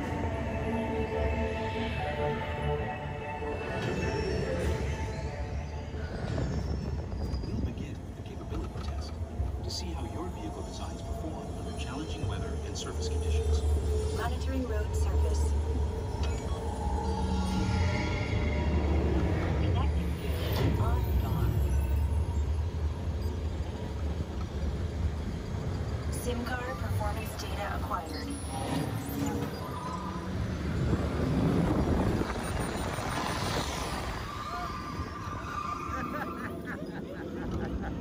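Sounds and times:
onboard music and sound effects: 0.0s - 38.0s
ride vehicle rumbling: 0.0s - 38.0s.

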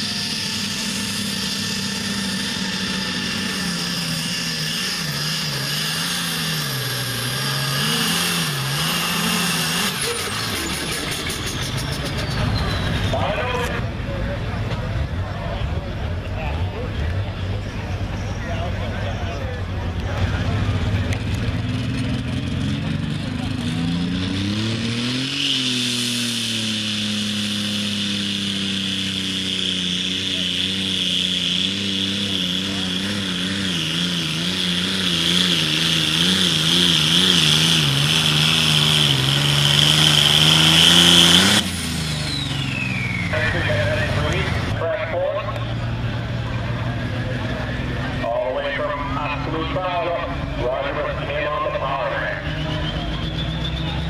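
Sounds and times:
diesel tractor engine revving: 0.0s - 54.0s
high turbo whine: 0.0s - 54.0s.

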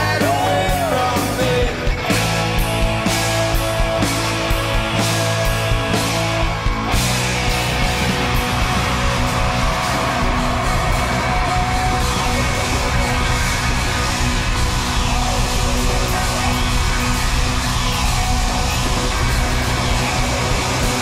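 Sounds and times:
audience yelling and cheering: 0.0s - 21.0s
live pop-rock band playing: 0.0s - 21.0s.

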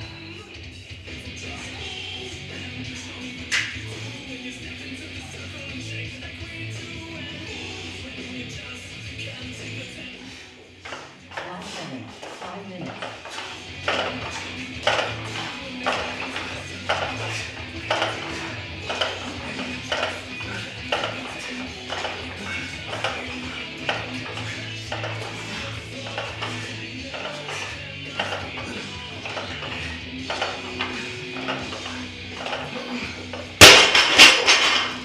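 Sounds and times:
background music with steady beat: 0.0s - 35.0s
barbell plates bouncing: 10.8s - 35.0s
barbell crashing onto rubber floor: 33.6s - 35.0s.

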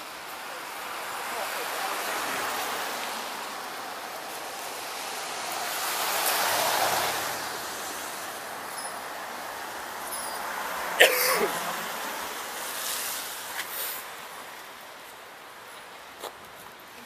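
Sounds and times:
car tyres hissing on wet road: 0.0s - 16.2s.

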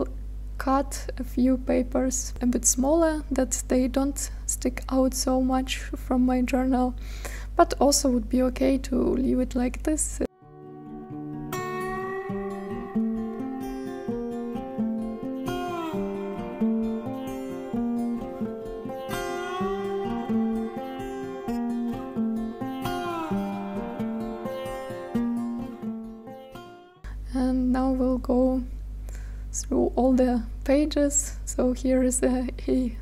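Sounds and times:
plucked guitar music: 10.3s - 27.0s.

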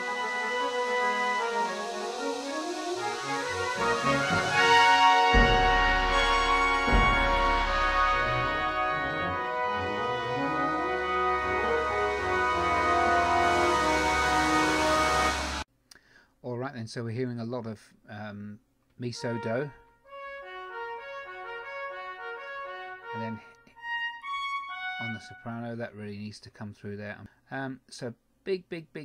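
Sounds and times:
brass chords: 0.0s - 15.7s, 19.2s - 25.6s
heavy low percussion hits: 3.7s - 9.0s.

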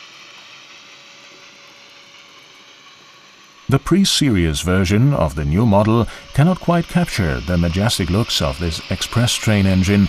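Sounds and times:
model train cars rolling on rails: 0.0s - 10.0s.

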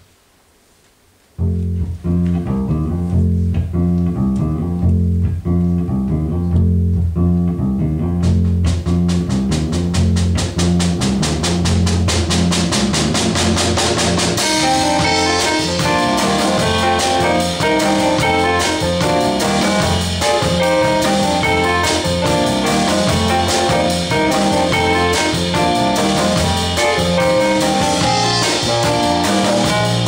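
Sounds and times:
electric bass riff: 1.4s - 30.0s
drum kit cymbal beat: 8.2s - 30.0s
keyboard chords: 13.8s - 30.0s.

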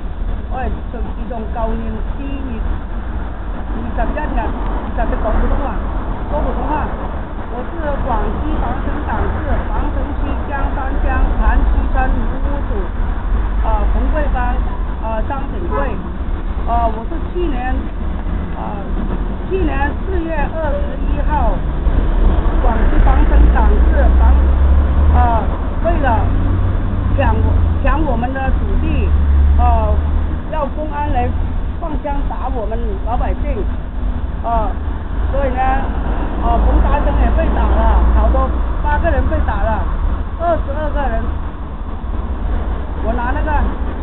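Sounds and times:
heavy low rumble: 0.0s - 44.0s
woman talking: 0.5s - 2.7s, 3.8s - 12.9s, 13.6s - 16.0s, 16.7s - 17.9s, 18.6s - 21.6s, 22.6s - 24.4s, 25.2s - 26.3s, 27.1s - 33.7s, 34.4s - 41.3s, 43.0s - 43.7s.

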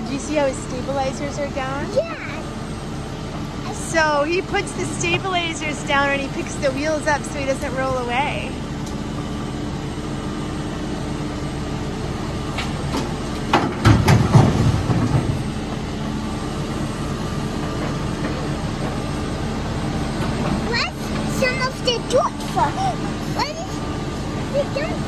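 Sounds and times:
diesel engine running: 0.0s - 25.0s.

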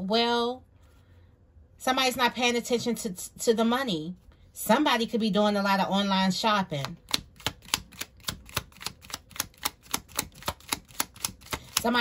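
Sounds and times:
cards being shuffled: 6.8s - 12.0s.

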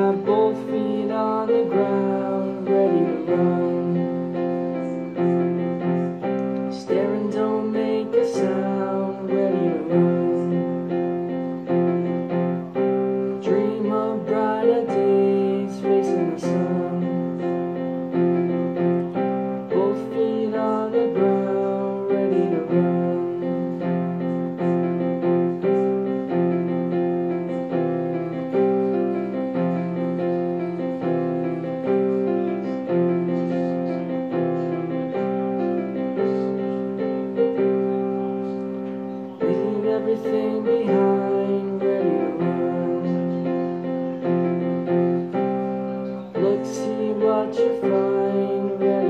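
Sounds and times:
digital piano chords and melody: 0.0s - 49.0s.

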